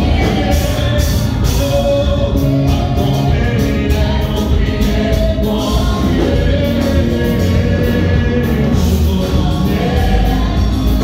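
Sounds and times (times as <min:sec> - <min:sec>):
group singing worship song: 0:00.0 - 0:11.0.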